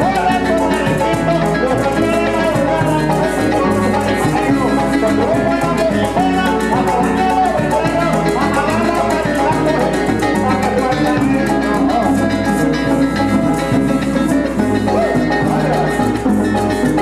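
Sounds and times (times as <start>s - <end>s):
fast maraca rhythm: 0.0s - 17.0s
plucked strings: 0.0s - 17.0s
steady bass: 0.0s - 17.0s.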